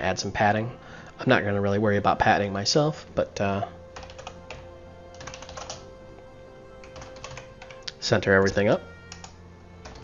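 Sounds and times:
computer keyboard typing: 4.0s - 5.8s, 6.8s - 7.8s, 9.1s - 10.0s.

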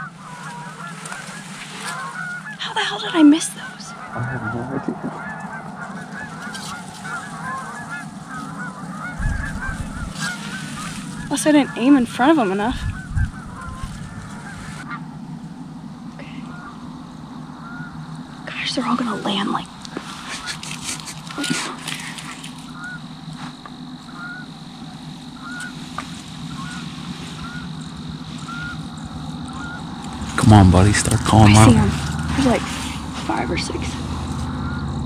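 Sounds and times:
wild geese honking: 0.0s - 35.0s.

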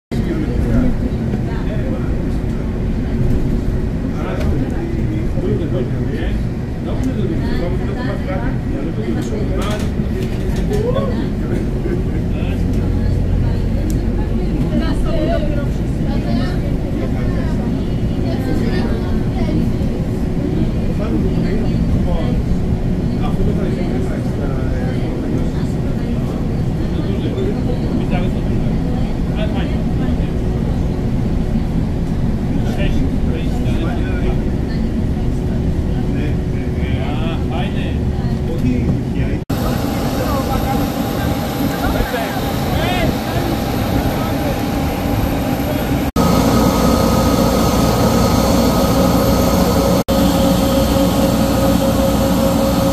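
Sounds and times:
bus engine drone: 0.1s - 52.9s.

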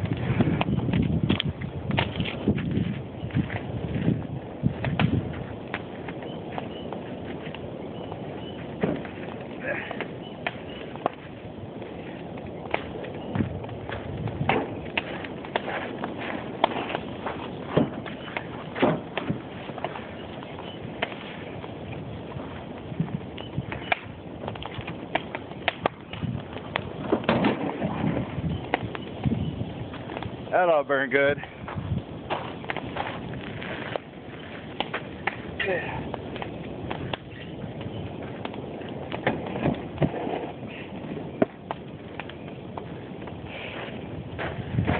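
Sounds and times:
footsteps on gravel: 0.0s - 27.3s, 29.2s - 44.9s
bonfire crackling: 0.0s - 44.9s.

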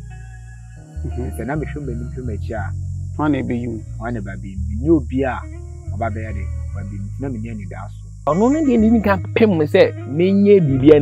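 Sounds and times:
background music with droning bass: 0.0s - 11.0s
man talking: 1.0s - 11.0s.

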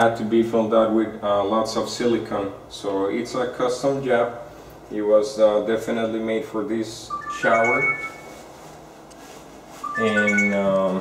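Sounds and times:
low steady background noise: 0.0s - 11.0s.

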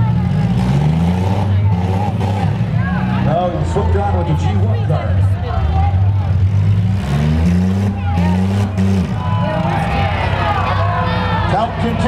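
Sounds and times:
car engine running loudly: 0.0s - 12.0s
people talking: 1.2s - 6.4s, 7.8s - 12.0s.

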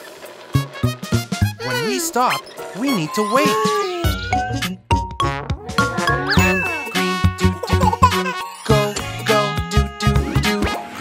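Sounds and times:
bright bell-like chiming notes: 5.8s - 9.4s.

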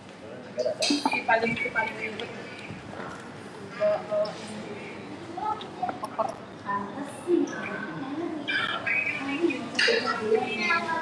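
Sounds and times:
low background chatter: 0.0s - 11.0s.

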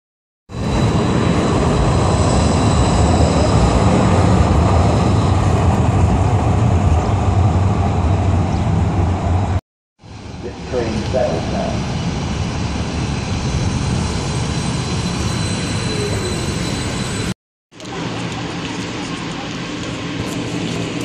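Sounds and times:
light rail train rumbling: 0.5s - 21.0s
faint high whine: 10.1s - 17.3s.

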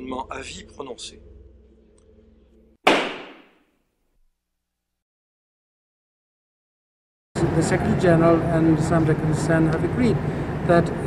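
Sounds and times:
sharp impact sound effect: 2.9s - 3.6s.

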